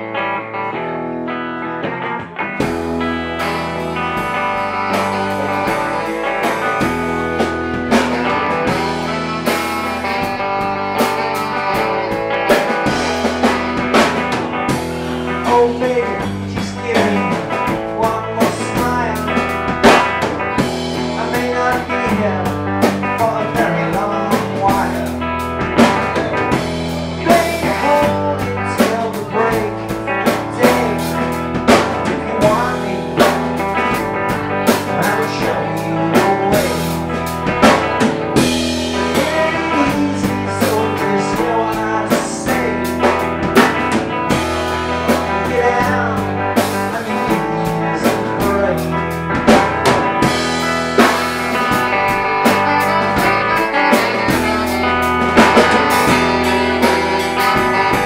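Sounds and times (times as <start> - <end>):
blues-rock band playing: 0.0 - 58.0
wavering melodic lead line: 0.3 - 58.0.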